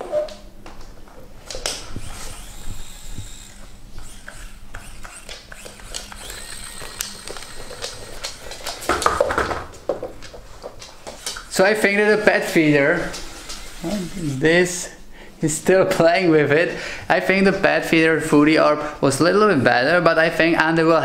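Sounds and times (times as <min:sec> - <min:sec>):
toy electric motor whining: 0:01.7 - 0:08.8, 0:11.1 - 0:11.5, 0:13.1 - 0:14.4.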